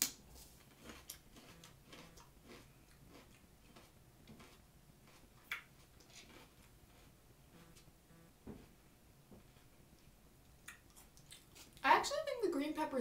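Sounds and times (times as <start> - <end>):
chewing crunches: 0.6 - 7.7, 10.6 - 11.8.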